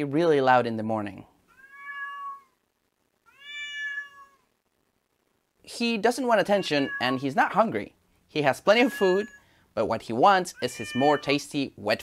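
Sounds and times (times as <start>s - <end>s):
cat meowing: 1.5s - 2.6s, 3.2s - 4.5s, 6.4s - 7.6s, 8.6s - 9.5s, 10.5s - 11.4s.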